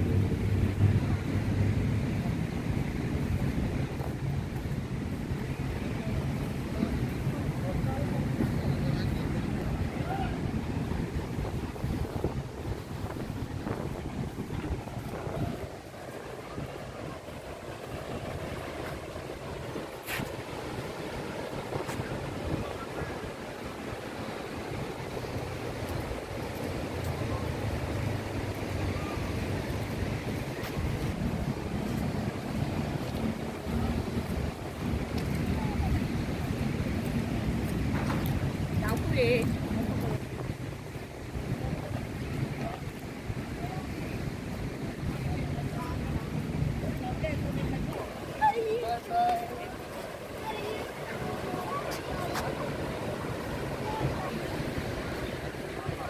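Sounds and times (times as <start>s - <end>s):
small waves washing on shore: 0.0s - 56.0s
wind buffeting microphone: 0.0s - 56.0s
faint voices of people: 5.5s - 11.1s, 32.8s - 40.6s, 41.3s - 56.0s.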